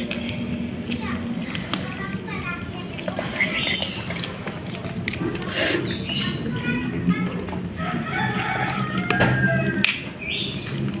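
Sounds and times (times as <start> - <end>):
kittens chewing and tearing: 0.0 - 10.0.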